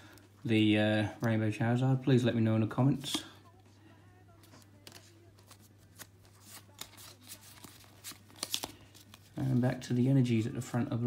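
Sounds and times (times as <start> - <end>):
trading cards rustling and snapping: 4.4 - 9.8.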